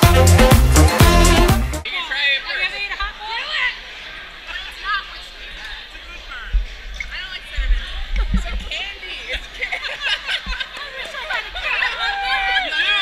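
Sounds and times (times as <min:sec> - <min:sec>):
voices of people nearby: 0:01.8 - 0:13.0.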